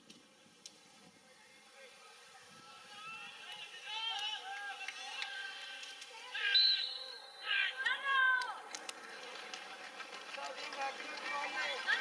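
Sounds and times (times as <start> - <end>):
spectators shouting: 10.6 - 12.0.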